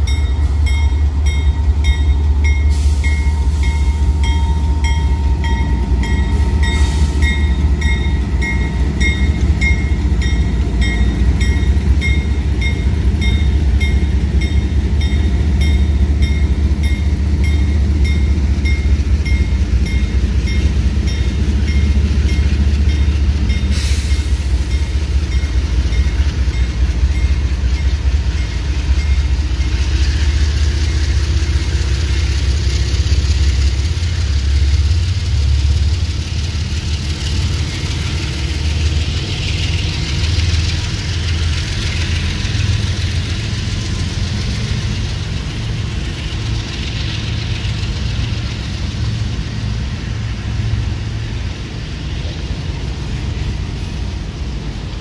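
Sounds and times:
diesel locomotive idling: 0:00.0 - 0:55.0.

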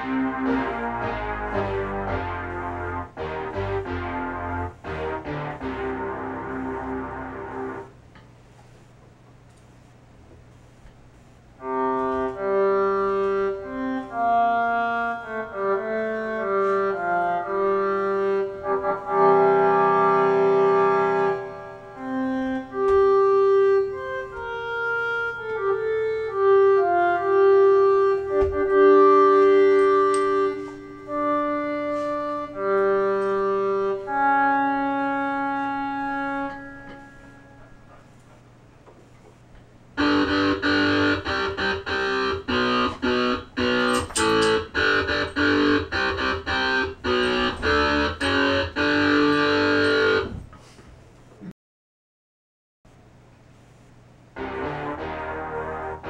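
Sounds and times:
synthesizer melody with chords: 0:00.0 - 0:08.0, 0:11.6 - 0:37.9, 0:40.0 - 0:50.4, 0:54.4 - 0:56.0.

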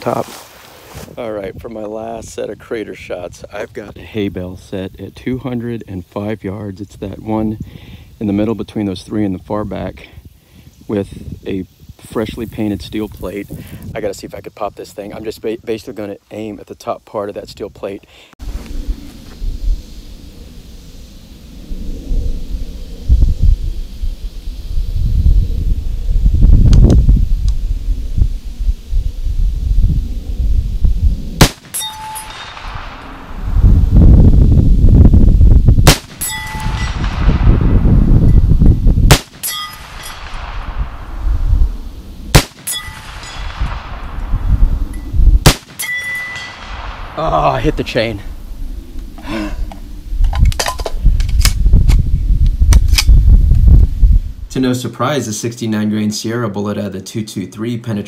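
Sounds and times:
low rumbling noise: 0:18.4 - 0:54.6
steel plate target ping: 0:31.4 - 0:33.4, 0:35.9 - 0:37.4, 0:39.1 - 0:40.9, 0:42.4 - 0:44.1, 0:44.8 - 0:47.2
rifle shots: 0:31.4 - 0:33.5, 0:35.8 - 0:37.8, 0:39.1 - 0:41.2, 0:42.3 - 0:44.5, 0:45.4 - 0:47.2.

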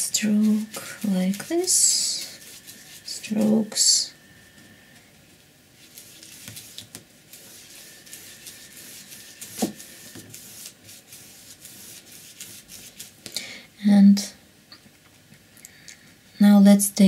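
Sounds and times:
paint brush swishing on paper: 0:00.0 - 0:13.2.

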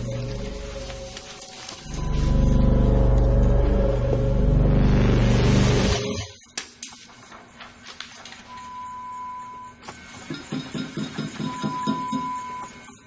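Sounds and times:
long steady beeps: 0:08.5 - 0:13.0.

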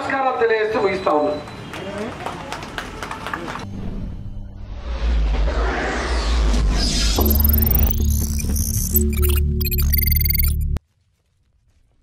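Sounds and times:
electronic logo sting: 0:03.7 - 0:10.8.

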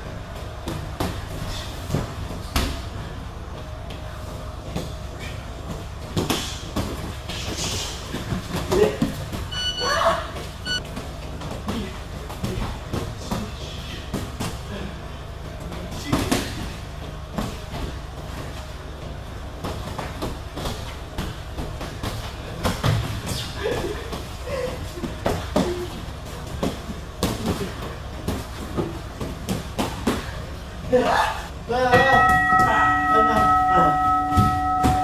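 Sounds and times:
feet shuffling on gym mats: 0:00.1 - 0:31.5.

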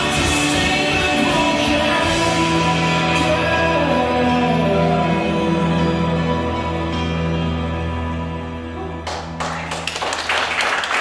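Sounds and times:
slow music with low notes: 0:00.0 - 0:10.2
audience clapping: 0:09.0 - 0:11.0.

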